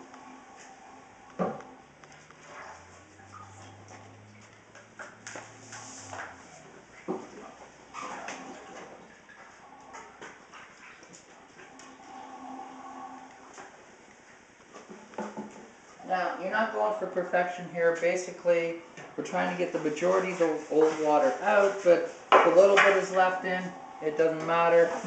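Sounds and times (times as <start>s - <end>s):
low hum: 8.4s - 14.1s.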